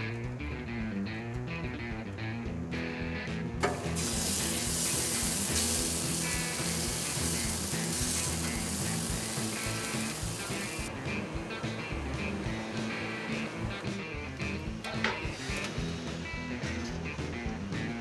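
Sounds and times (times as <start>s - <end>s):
guitar background music: 0.0s - 18.0s
grill click: 3.6s - 10.9s
meat sizzling on a grill: 3.6s - 10.9s.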